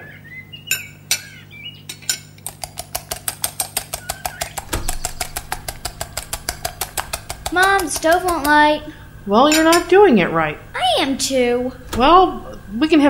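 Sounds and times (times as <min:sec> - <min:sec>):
rapid clicking: 0:02.4 - 0:09.9
low hum: 0:04.6 - 0:13.0.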